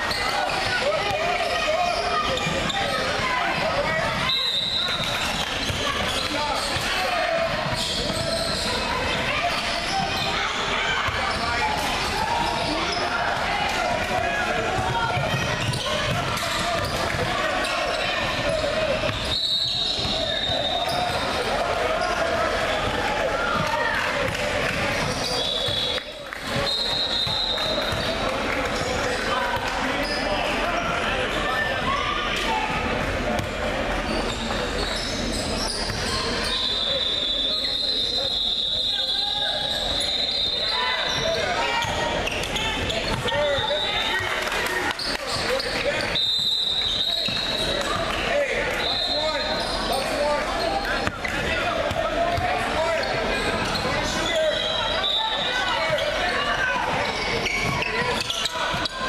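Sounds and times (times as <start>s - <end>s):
indistinct chatter: 0.0s - 59.0s.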